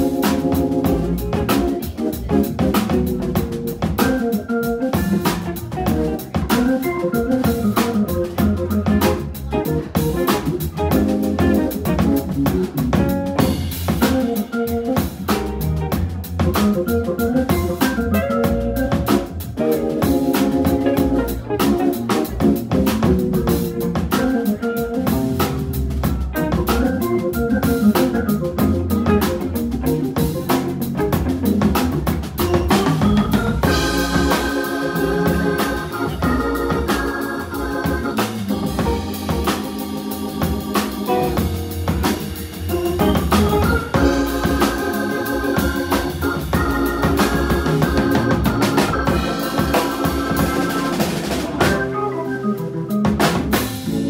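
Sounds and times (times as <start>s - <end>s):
busy drum kit: 0.0s - 54.0s
electric guitar: 0.0s - 54.0s
organ chording: 0.0s - 54.0s.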